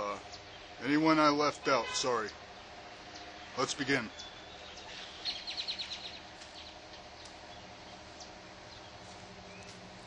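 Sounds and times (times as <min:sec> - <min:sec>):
bird chirping: 0:00.0 - 0:01.0, 0:02.1 - 0:09.9
outdoor background noise: 0:00.0 - 0:10.0.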